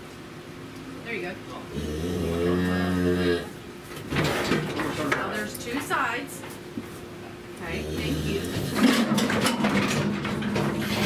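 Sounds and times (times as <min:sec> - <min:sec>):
cow mooing: 0:01.7 - 0:03.6.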